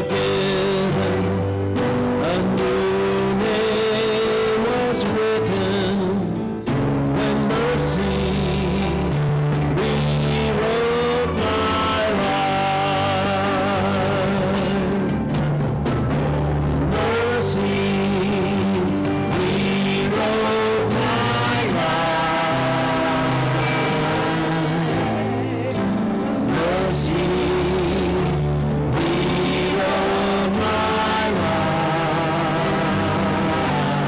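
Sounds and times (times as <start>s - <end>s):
keyboard accompaniment: 0.0s - 34.0s.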